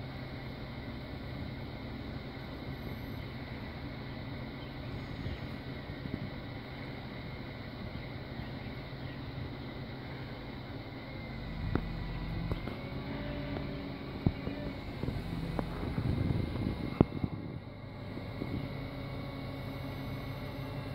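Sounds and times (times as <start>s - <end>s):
truck engine running: 0.0s - 20.9s.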